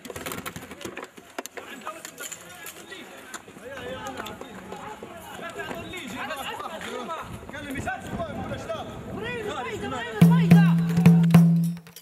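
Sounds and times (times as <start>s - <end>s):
men shouting and calling: 9.4s - 11.3s.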